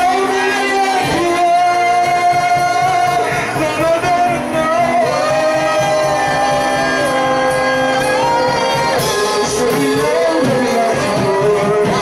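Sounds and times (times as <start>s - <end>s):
keyboard and band accompaniment: 0.0s - 12.0s
man singing through microphone: 0.0s - 12.0s.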